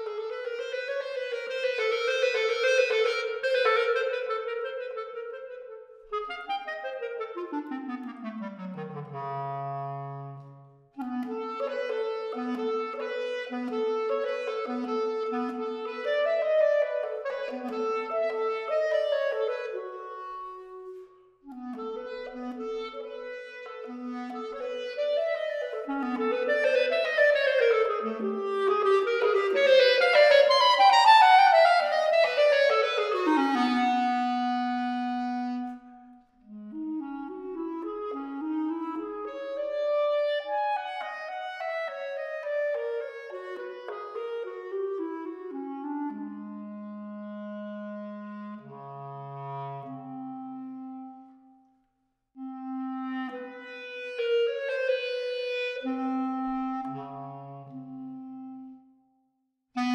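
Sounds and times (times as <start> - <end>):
solo clarinet playing: 0.0 - 51.8, 52.4 - 59.2.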